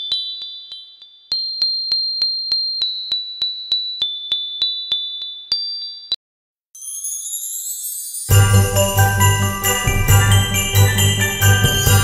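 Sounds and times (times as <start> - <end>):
bell-like timer ticks: 0.0 - 6.2, 6.8 - 12.0
rising shimmering whoosh: 8.2 - 12.0.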